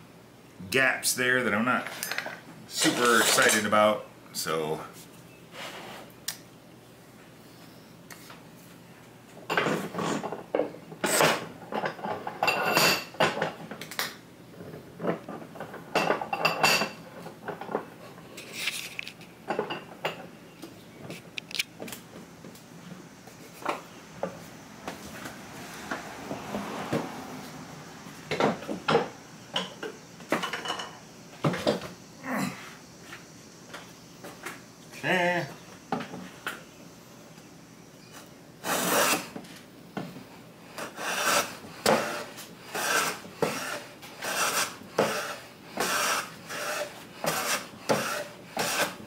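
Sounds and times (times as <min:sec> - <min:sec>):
longer scrape on workbench: 0:05.5 - 0:06.1, 0:38.6 - 0:39.4, 0:40.7 - 0:49.0.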